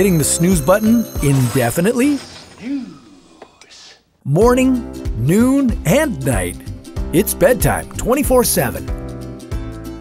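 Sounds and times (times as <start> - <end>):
man talking: 0.0 - 3.0, 3.7 - 8.9
person whispering: 2.6 - 4.1.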